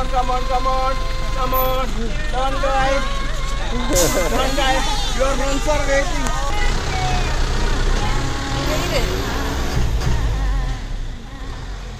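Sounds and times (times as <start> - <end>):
bus engine humming: 0.0 - 11.9
voices: 0.0 - 11.9.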